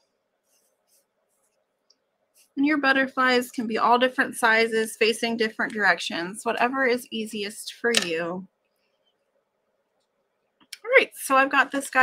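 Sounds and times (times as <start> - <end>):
woman speaking: 2.6 - 8.5, 10.8 - 12.0.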